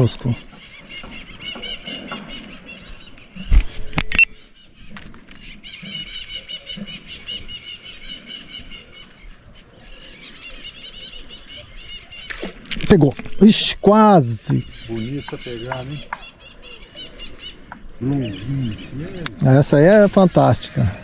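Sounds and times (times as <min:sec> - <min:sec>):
birds chattering: 0:00.0 - 0:21.0.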